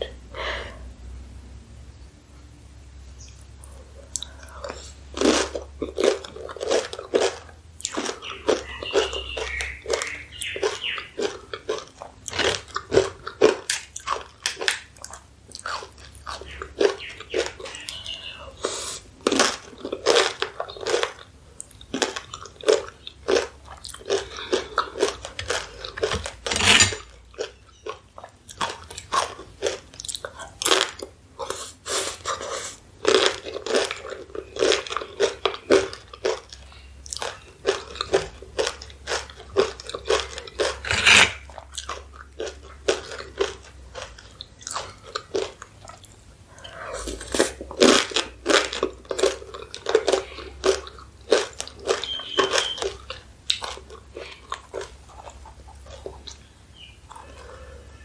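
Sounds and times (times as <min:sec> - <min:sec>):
crunching corn chips: 0:04.2 - 0:46.3, 0:46.9 - 0:58.0.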